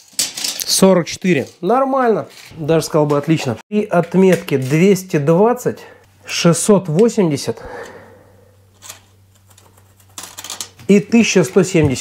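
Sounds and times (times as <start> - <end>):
low steady hum: 3.8 - 12.0.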